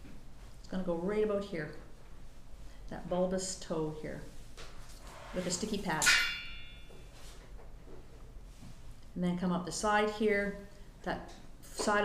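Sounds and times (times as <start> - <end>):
sharp clink: 6.0 - 7.1.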